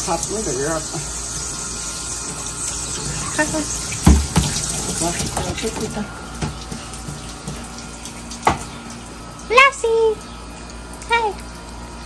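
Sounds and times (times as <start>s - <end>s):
tap water running into sink: 0.0s - 9.6s.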